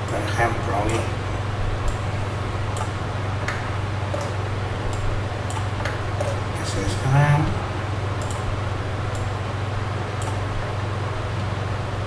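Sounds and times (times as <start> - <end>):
low hum and hiss: 0.0 - 12.0
computer mouse clicks: 8.2 - 8.4, 10.2 - 10.4.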